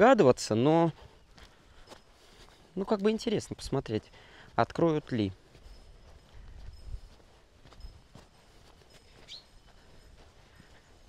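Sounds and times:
footsteps on gravel: 0.0s - 11.0s
bird chirp: 8.9s - 10.2s.

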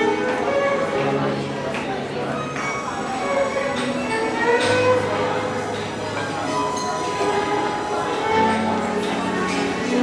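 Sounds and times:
violin playing long notes: 0.0s - 1.4s, 2.4s - 6.1s, 7.3s - 10.0s.

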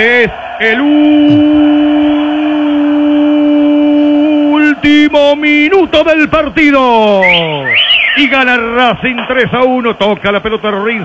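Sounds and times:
man speaking rapidly: 0.0s - 1.9s, 4.6s - 11.0s.

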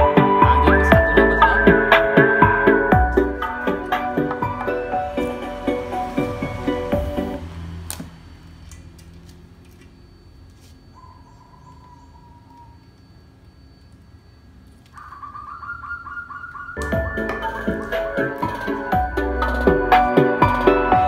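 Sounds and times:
music through a woofer: 0.0s - 7.5s, 16.8s - 21.0s
patterned tone: 0.0s - 7.5s, 10.1s - 21.0s
faint bird chirp: 9.9s - 16.8s.

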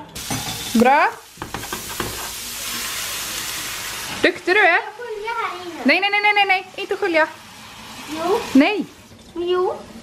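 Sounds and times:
onion sizzling in frying pan: 0.0s - 10.0s.

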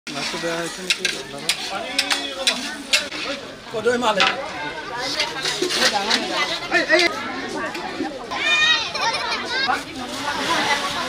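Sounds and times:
metal ladle scraping wok: 0.1s - 3.6s, 4.2s - 7.1s.

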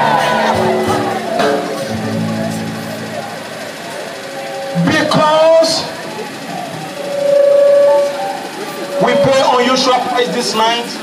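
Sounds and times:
held musical note: 0.0s - 10.4s
man speaking over loudspeakers: 4.8s - 6.1s, 9.0s - 11.0s.

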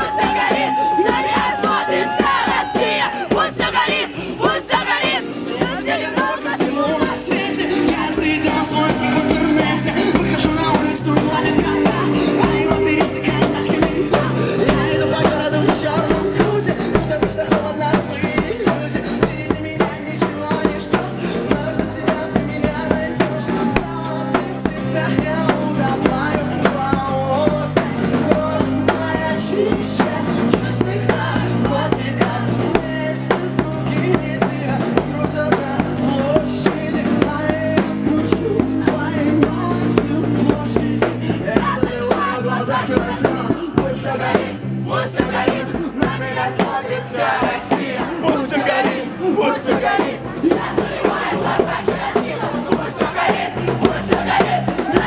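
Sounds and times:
guitar: 0.0s - 55.0s
man singing: 0.0s - 55.0s
electric bass: 6.7s - 47.1s.

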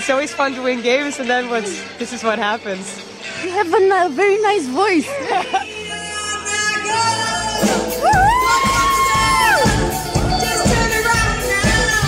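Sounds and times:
live band with drums: 7.0s - 12.0s.

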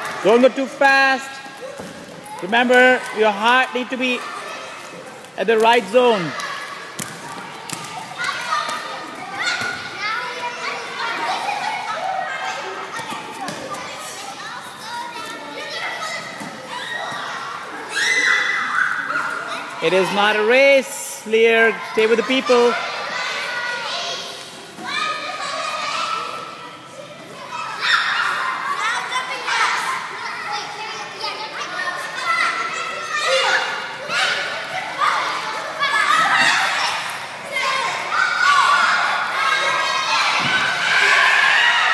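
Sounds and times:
children calling out and chattering: 0.0s - 41.9s.

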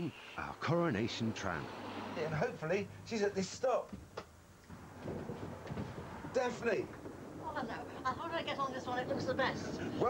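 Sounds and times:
tram rattling rumble: 4.8s - 10.0s.

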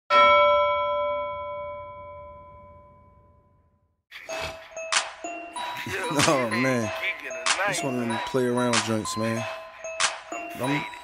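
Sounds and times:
bell ringing: 0.1s - 3.7s, 4.3s - 11.0s.

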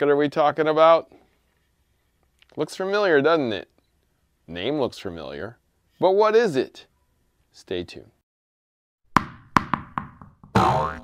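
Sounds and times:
cartoon pop sound effects: 9.2s - 11.0s.

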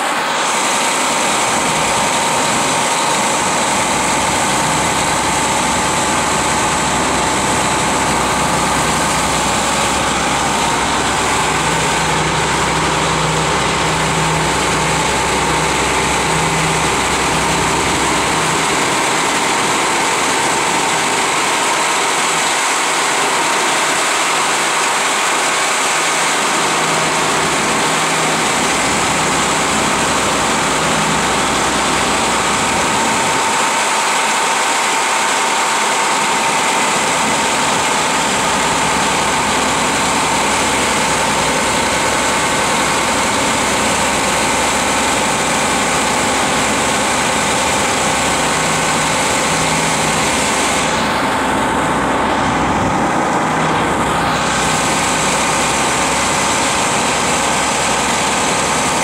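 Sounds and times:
steady high whine: 0.0s - 59.0s
tractor diesel engine running: 0.0s - 59.0s.

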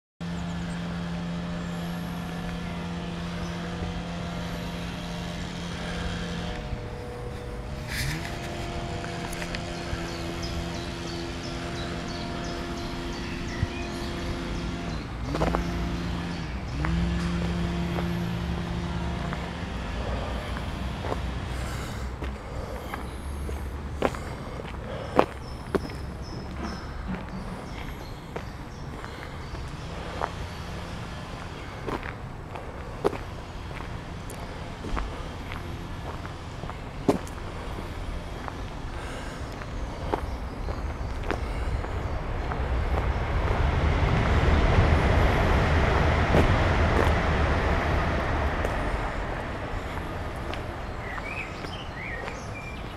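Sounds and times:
steady low rumble: 0.2s - 52.9s
vehicle passing: 0.2s - 52.9s
footsteps on gravel: 4.3s - 45.0s, 45.6s - 52.9s.

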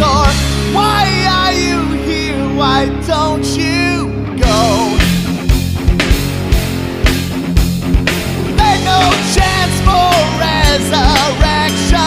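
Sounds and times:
bending lead guitar melody: 0.0s - 12.0s
hard rock song: 0.0s - 12.0s.

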